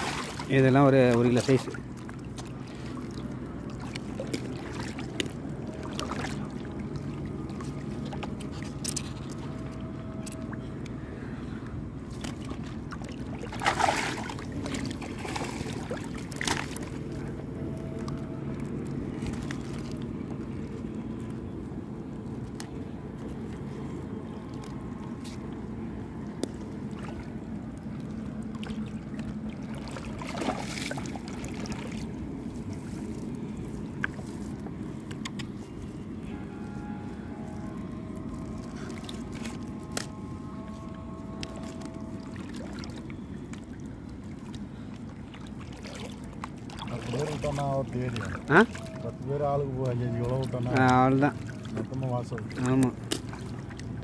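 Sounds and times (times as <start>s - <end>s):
wet fishing net rustling: 0.0s - 10.5s, 12.0s - 17.3s, 28.4s - 54.0s
low steady hum: 0.0s - 54.0s
water sloshing and trickling: 0.0s - 54.0s.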